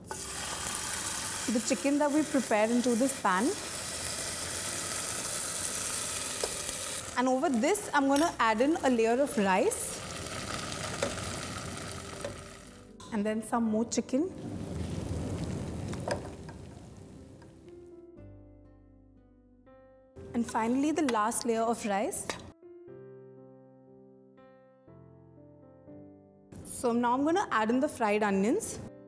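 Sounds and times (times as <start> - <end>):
ghee sizzling in a pan: 0.0 - 12.9, 14.6 - 17.4
gentle plucked music: 16.2 - 23.3.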